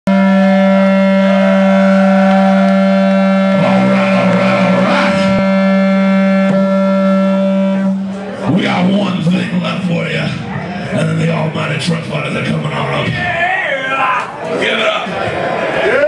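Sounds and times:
distorted electric guitar drone: 0.1 - 13.1.

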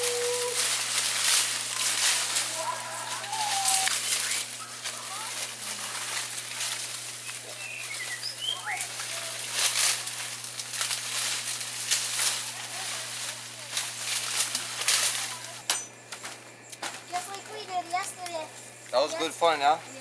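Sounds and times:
dry leaves rustling and crackling: 0.0 - 20.0
steady low hum: 0.0 - 20.0.

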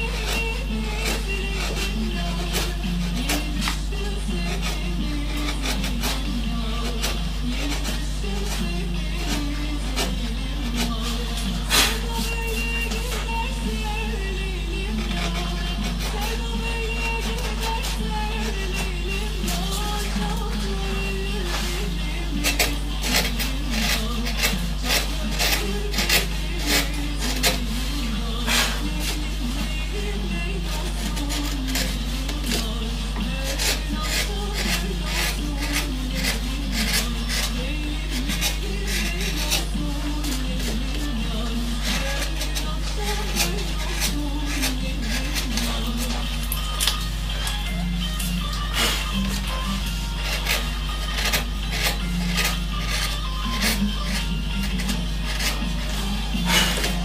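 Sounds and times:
background music with wavering melody: 0.0 - 57.0
carving gouge scraping wood: 0.0 - 57.0.

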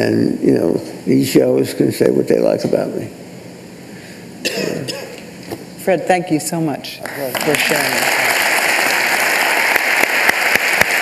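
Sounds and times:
person coughing: 4.4 - 5.2.

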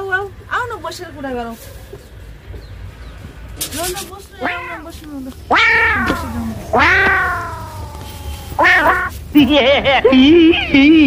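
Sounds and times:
meow-like cries sliding down: 4.4 - 4.8, 5.5 - 9.2.

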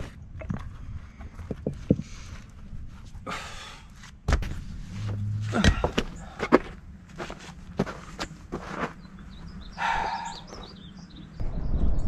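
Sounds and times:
boots crunching on gravel: 5.0 - 9.1
birds chirping faintly: 7.7 - 12.0.

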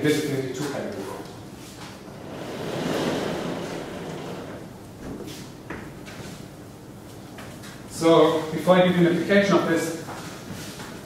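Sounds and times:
blackboard panels sliding on tracks: 2.0 - 4.8.

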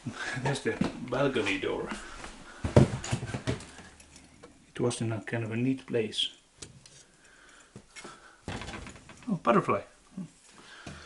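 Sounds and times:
footsteps on wooden floorboards: 0.5 - 3.9.

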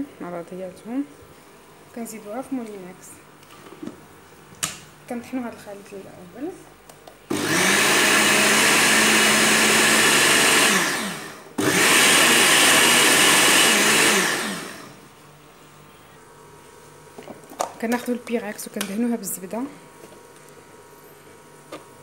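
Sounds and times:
blender motor running: 7.3 - 15.1.

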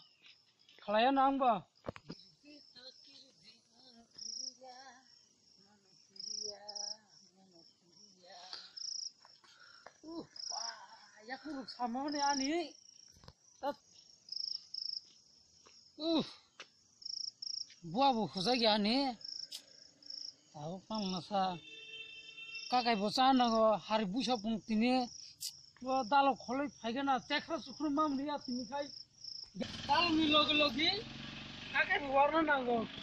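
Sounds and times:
cricket chirping: 0.0 - 33.0
faint insect hum: 0.0 - 33.0
person's voice: 10.1 - 12.8.

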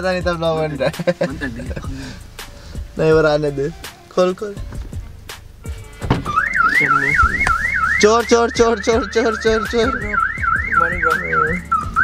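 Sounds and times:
car alarm chirps: 6.1 - 12.0
car alarm siren warbling: 6.2 - 12.0.

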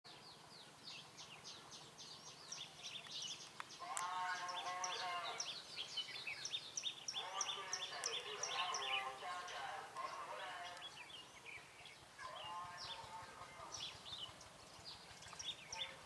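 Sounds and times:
songbirds chirping: 0.1 - 16.0
lower multi-toned bird call: 3.8 - 16.0.

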